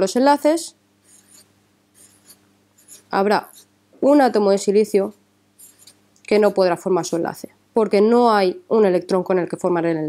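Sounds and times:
marker pen drawing on paper: 0.3s - 3.7s, 5.0s - 7.2s.

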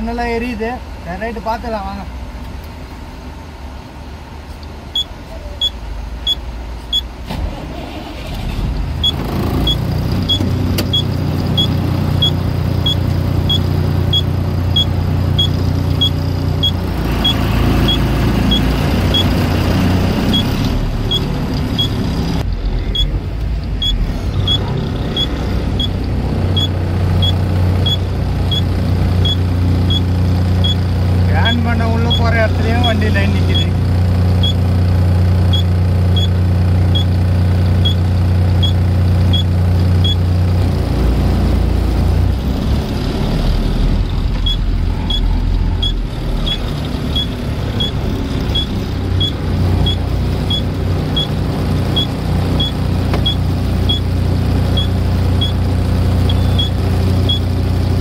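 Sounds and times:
diesel truck engine: 0.0s - 58.0s
turn indicator ticking: 9.0s - 19.4s, 20.3s - 22.0s, 23.0s - 30.8s, 35.5s - 36.3s, 38.6s - 40.2s, 44.4s - 51.3s, 52.0s - 54.1s, 54.8s - 55.6s, 56.3s - 57.5s.

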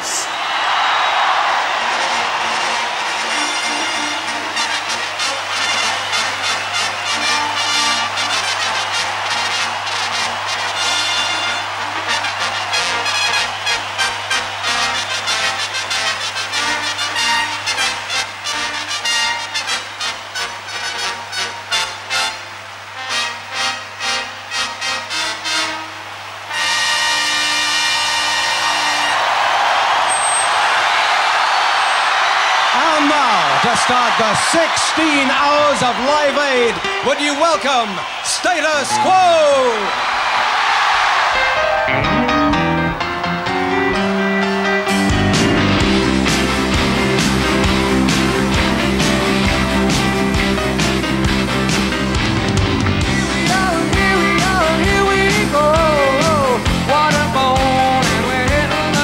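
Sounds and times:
crowd roaring: 0.0s - 22.9s, 24.2s - 59.0s
brass band playing: 1.1s - 29.7s, 34.6s - 38.2s, 41.3s - 59.0s.

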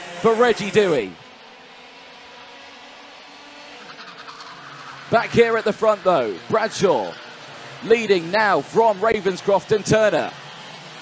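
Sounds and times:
kart engines running: 0.0s - 11.0s.

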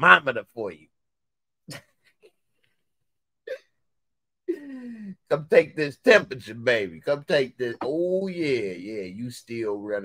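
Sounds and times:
man's hiccup-like vocal catch: 3.5s - 3.8s.

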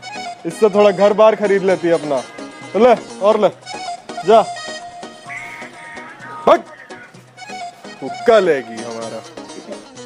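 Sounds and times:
background music with held tones: 0.0s - 10.0s
loud vocal call: 4.8s - 7.2s.

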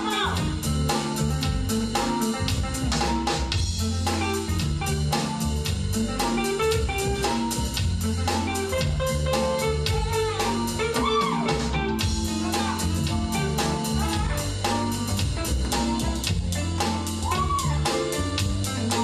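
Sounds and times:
drum kit beat: 0.0s - 19.0s
live band playing jazz: 0.0s - 19.0s.

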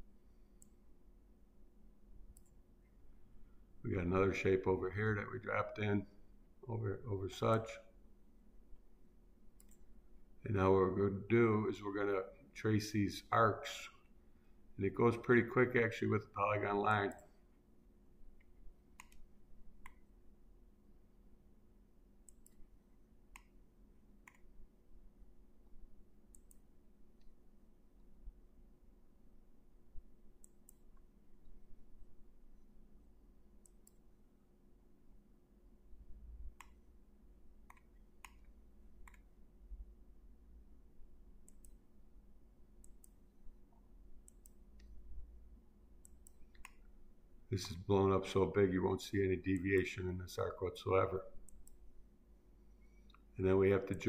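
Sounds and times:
faint low hum: 0.0s - 54.0s
computer mouse clicks: 0.6s - 0.8s, 2.3s - 2.6s, 9.6s - 9.9s, 17.1s - 17.3s, 18.4s - 20.1s, 22.2s - 22.7s, 23.3s - 23.6s, 24.2s - 24.5s, 26.3s - 27.4s, 30.4s - 31.1s, 33.6s - 34.1s, 36.5s - 36.9s, 37.6s - 39.3s, 41.4s - 41.8s, 42.8s - 43.3s, 44.2s - 45.0s, 46.0s - 46.9s, 51.5s - 51.8s.

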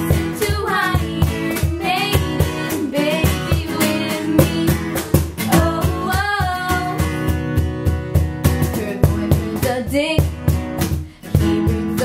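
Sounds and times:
girls singing together: 0.0s - 7.2s
cajon beat: 0.0s - 12.0s
strummed acoustic guitar: 0.0s - 12.0s.

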